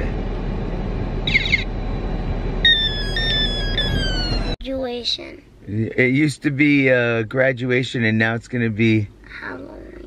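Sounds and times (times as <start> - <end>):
low rumble inside car: 0.0 - 10.0
electronic tone stepping down: 2.6 - 4.6.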